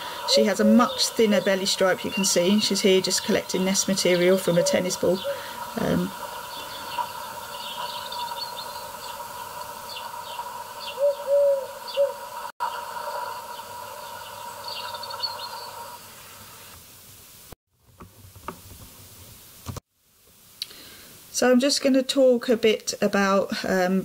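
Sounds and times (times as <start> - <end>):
low drawn-out bird calls: 0.0 - 16.7
birds chirping: 0.0 - 16.8.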